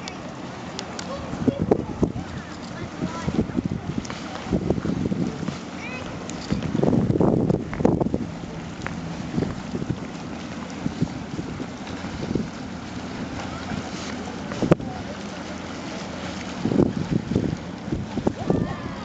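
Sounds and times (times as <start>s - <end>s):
ship rumble passing: 0.0s - 19.0s
wind buffeting microphone: 1.0s - 19.0s.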